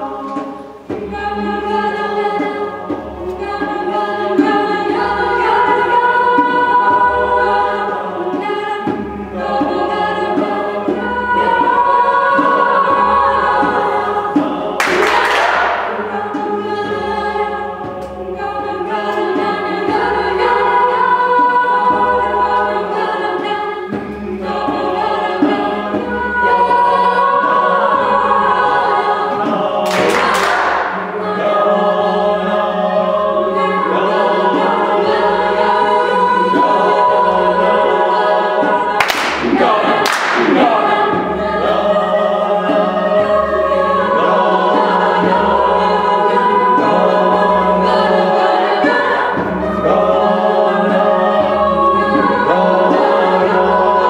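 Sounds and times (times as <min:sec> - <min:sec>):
choir of women singing: 0:00.0 - 0:54.0.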